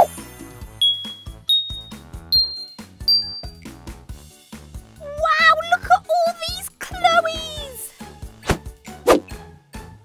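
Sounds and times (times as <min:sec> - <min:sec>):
background music with beat: 0:00.0 - 0:04.9
rising ding sound effects: 0:00.8 - 0:03.6.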